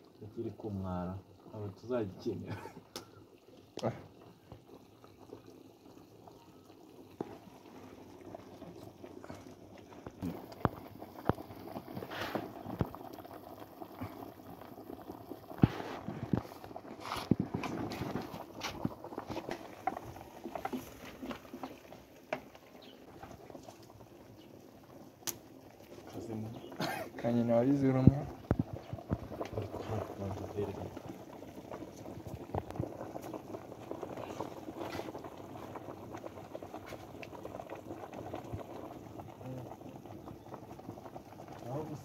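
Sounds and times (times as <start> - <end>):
pot bubbling: 0.0 - 42.0
wood fire crackling: 0.0 - 42.0.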